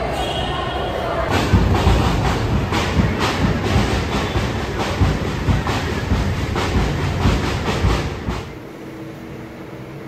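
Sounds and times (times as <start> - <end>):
train rumble: 1.2 - 8.7
train wheels clacking: 1.3 - 8.6.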